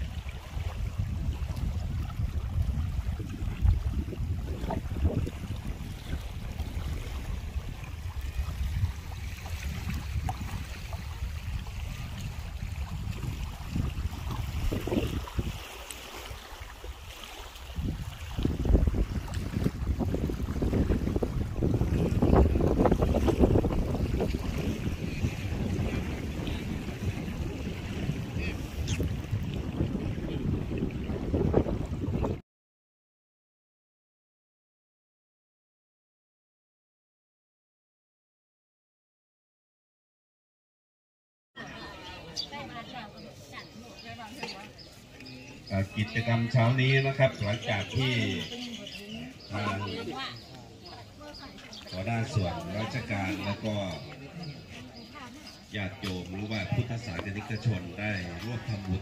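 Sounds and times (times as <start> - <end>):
wind buffeting microphone: 0.0 - 32.4.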